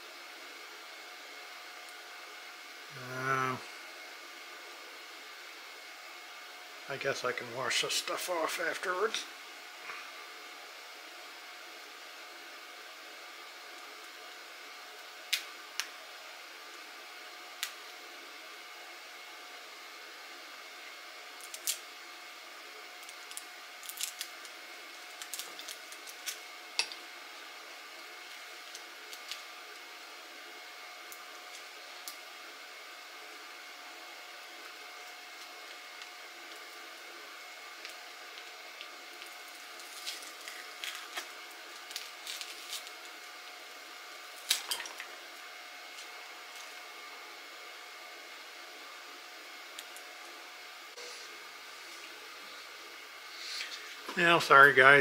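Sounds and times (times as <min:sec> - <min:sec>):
plastic wrap crinkling: 0:39.2 - 0:43.1.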